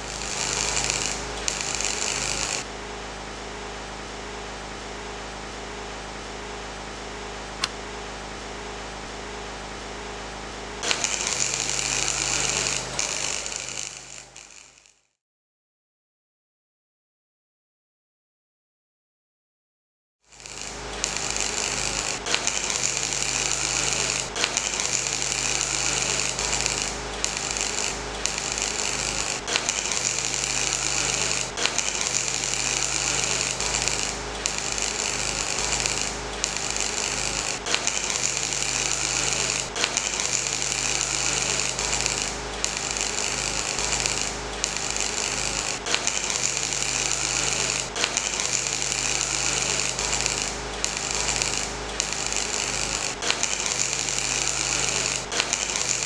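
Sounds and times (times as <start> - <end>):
power tool running with hiss: 0.0 - 15.0, 20.3 - 56.0.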